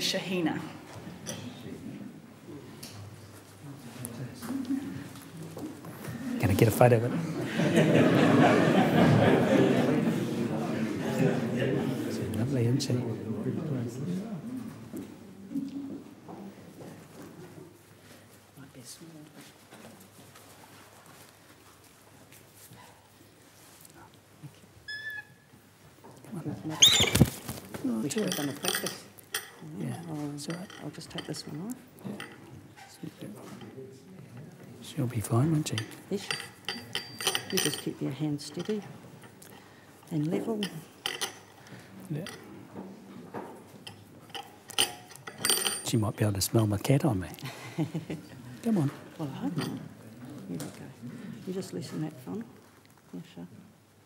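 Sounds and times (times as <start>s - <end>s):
murmur of voices: 0.0s - 16.8s, 45.9s - 52.6s.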